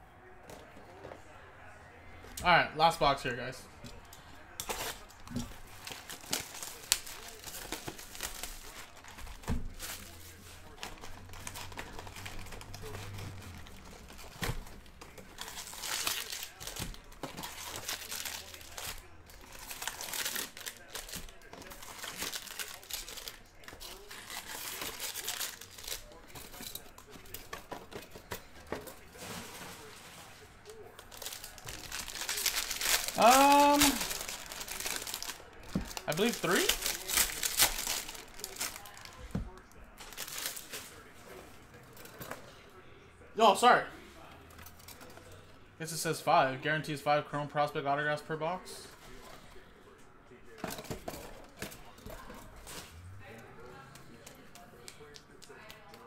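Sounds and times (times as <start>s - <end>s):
plastic wrapping crinkling and tearing: 3.8s - 30.0s, 30.7s - 41.1s.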